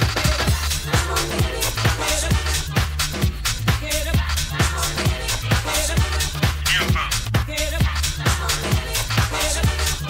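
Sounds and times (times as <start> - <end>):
house dance music: 0.0 - 10.0
kick drum beat: 0.0 - 10.0.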